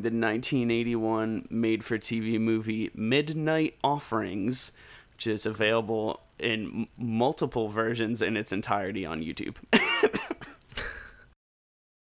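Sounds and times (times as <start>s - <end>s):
person laughing: 9.8s - 11.2s.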